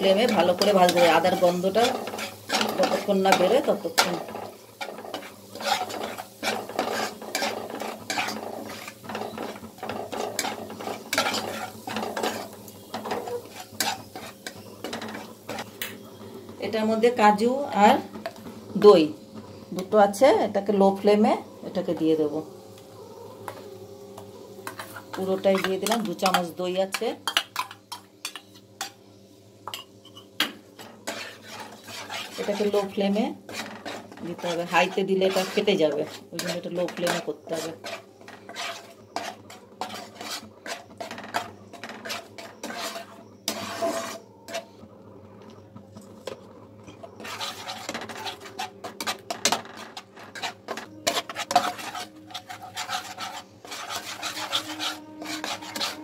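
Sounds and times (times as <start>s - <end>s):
spatula scraping a pan: 0.0s - 17.2s, 24.2s - 29.0s, 29.7s - 44.9s, 46.0s - 56.0s
paste sizzling in oil: 0.0s - 19.9s, 21.9s - 44.8s, 46.9s - 56.0s.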